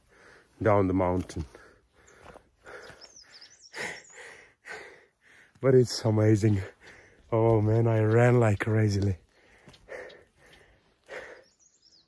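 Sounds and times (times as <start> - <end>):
man breathing hard: 0.0 - 0.6, 1.5 - 5.6, 6.6 - 7.3, 9.2 - 11.8.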